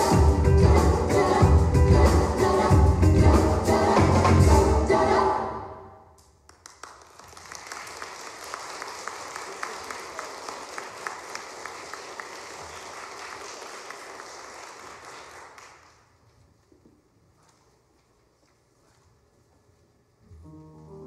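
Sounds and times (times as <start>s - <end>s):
audience applause: 6.6s - 16.0s.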